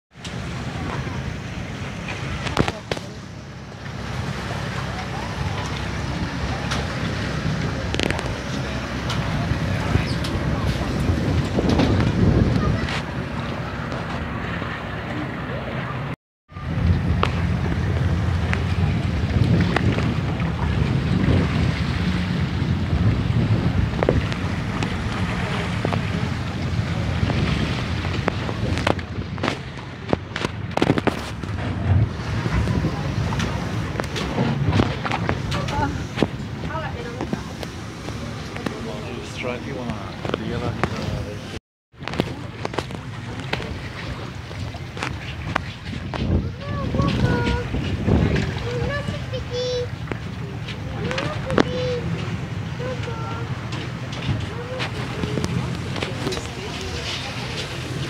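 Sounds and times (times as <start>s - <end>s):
water lapping against boat: 0.1s - 58.0s
sharp splashes or knocks: 0.2s - 14.8s, 16.6s - 58.0s
wind buffeting microphone: 0.2s - 58.0s
voices in background: 0.3s - 22.3s, 23.0s - 58.0s.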